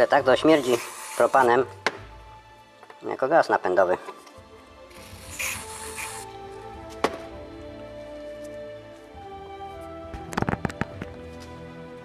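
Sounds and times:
background music: 0.0 - 12.0
aerosol spray hissing: 0.6 - 1.5, 4.9 - 6.4.

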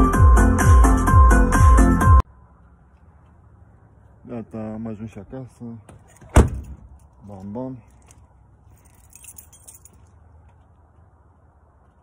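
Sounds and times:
keys jangling: 7.9 - 10.2.

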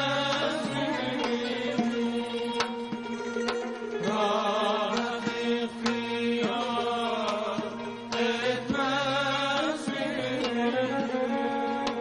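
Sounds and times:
string drone: 0.0 - 12.0
man singing ornamented melody: 4.0 - 12.0.

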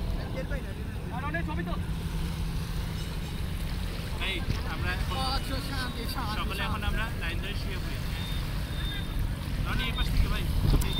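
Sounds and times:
low outdoor rumble: 0.0 - 10.9.

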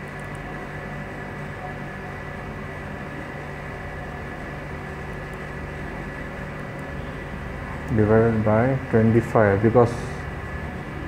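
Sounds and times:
background hum: 0.0 - 11.0
thin high whine: 0.0 - 11.0.

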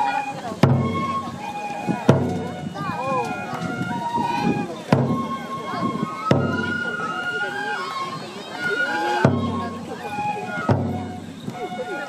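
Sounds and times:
large taiko drum strokes: 0.0 - 7.2, 8.9 - 11.7
held high flute notes: 0.0 - 12.0
voices singing and calling out: 0.0 - 12.0.

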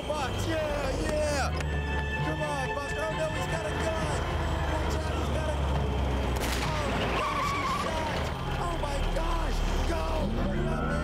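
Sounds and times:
truck engine rumbling: 0.0 - 11.0
men shouting: 6.6 - 11.0.

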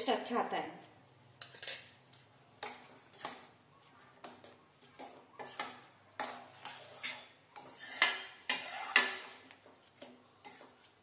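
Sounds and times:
metal spoon clinking in steel pan: 1.4 - 2.0, 5.0 - 9.3.

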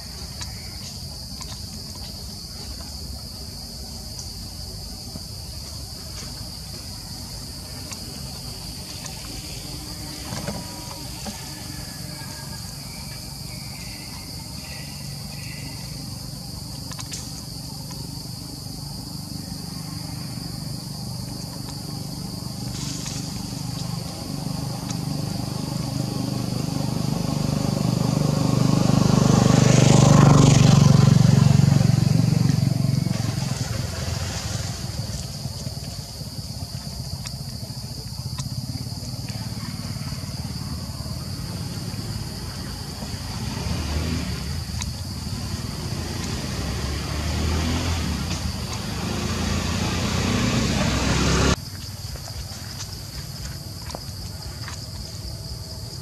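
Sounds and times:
insects droning: 0.0 - 56.0
motor vehicle passing by: 4.8 - 51.6.

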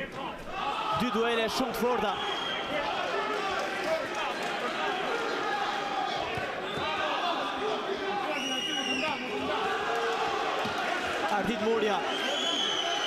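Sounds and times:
crowd shouting and chattering: 0.0 - 13.0.

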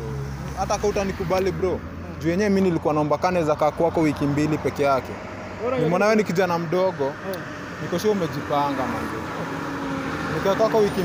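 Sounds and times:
man talking: 0.5 - 9.3, 10.3 - 11.0
car driving past: 2.8 - 11.0.

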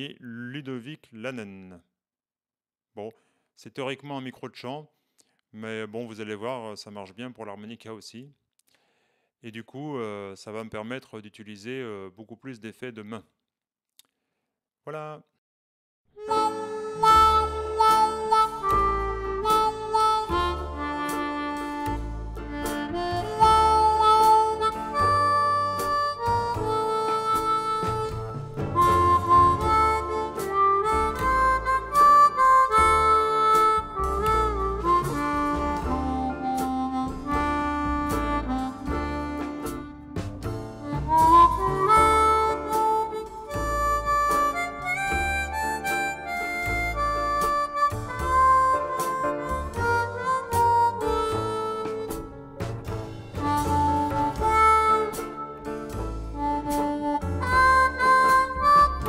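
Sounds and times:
blues harmonica melody: 16.2 - 59.0.

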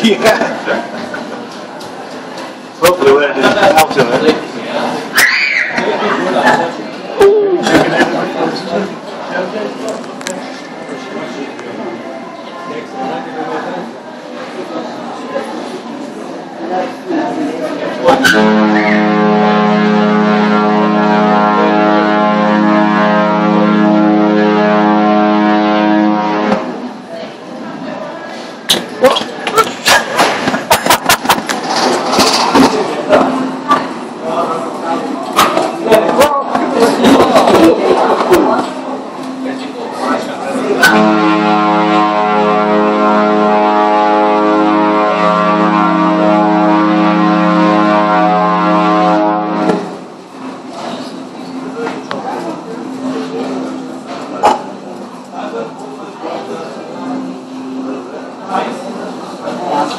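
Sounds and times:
ship's horn blast: 17.9 - 27.0, 36.8 - 50.9.

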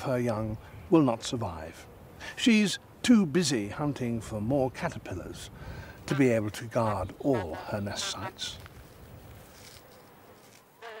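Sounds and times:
low hiss: 0.0 - 11.0
wasp buzzing: 9.6 - 11.0.

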